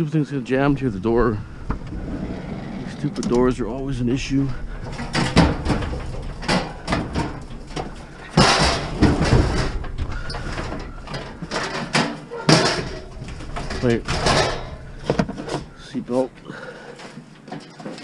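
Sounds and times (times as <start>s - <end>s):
metal scraping and rattling: 0.5s - 18.0s
metal grill knocking: 0.7s - 16.6s.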